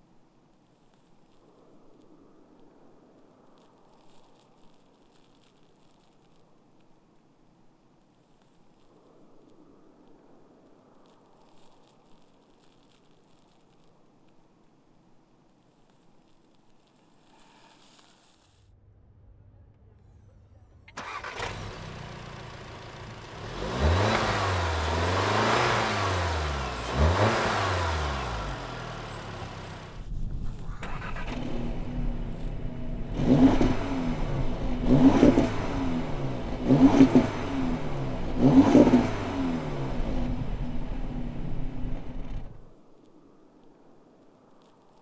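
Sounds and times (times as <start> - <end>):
car engine idling: 20.9 - 33.2
car engine revving: 21.0 - 30.1, 30.8 - 42.6.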